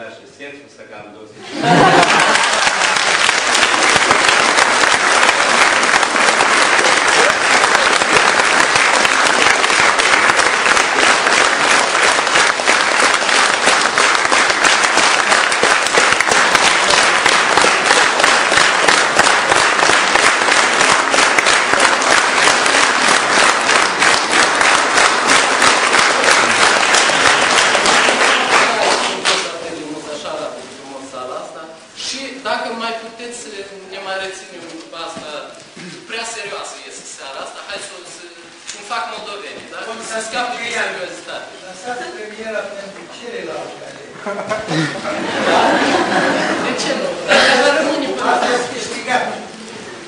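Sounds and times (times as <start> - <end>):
audience applauding: 1.6 - 29.6.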